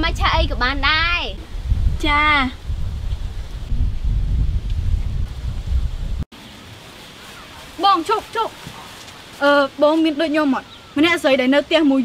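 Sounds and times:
wind buffeting microphone: 0.0 - 6.3.

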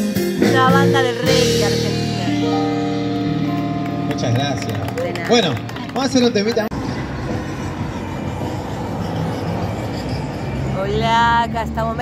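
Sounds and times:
city traffic rushing: 0.2 - 12.0.

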